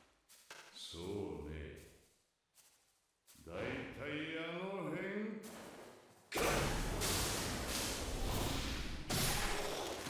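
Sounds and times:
person speaking: 0:00.7 - 0:02.0, 0:03.4 - 0:05.4.

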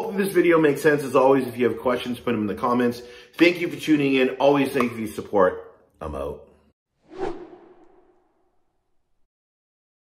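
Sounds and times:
whoosh sound effect: 0:07.0 - 0:08.7.

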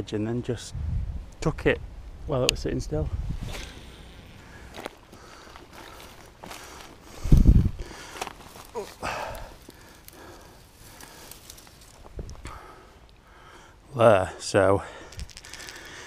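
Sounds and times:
footsteps through dry grass: 0:03.2 - 0:12.4.

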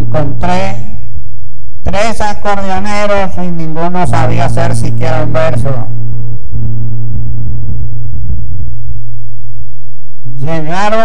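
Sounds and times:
loud low hum: 0:00.0 - 0:11.0
low rumble: 0:03.8 - 0:10.5.

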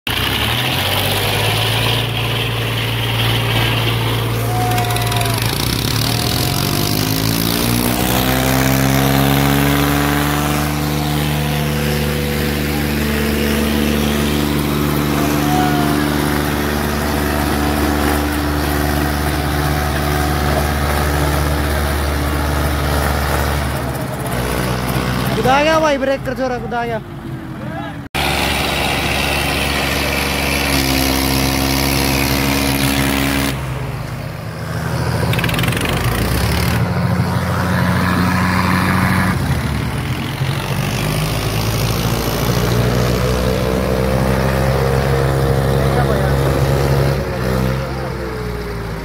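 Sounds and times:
diesel tractor engines revving: 0:00.0 - 0:49.0.

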